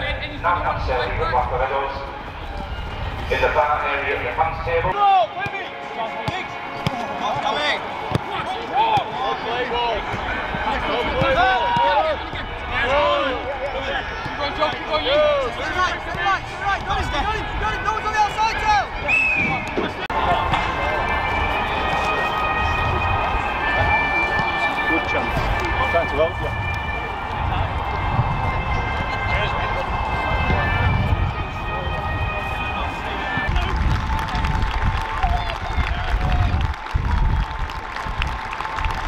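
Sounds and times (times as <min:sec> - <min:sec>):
players calling and shouting: 0:00.0 - 0:34.3
balls being kicked: 0:05.4 - 0:09.2, 0:10.0 - 0:12.6.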